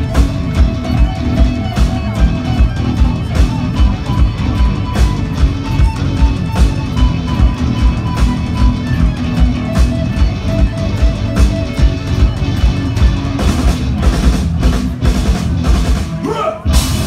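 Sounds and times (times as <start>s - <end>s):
electric guitars and bass: 0.0s - 17.0s.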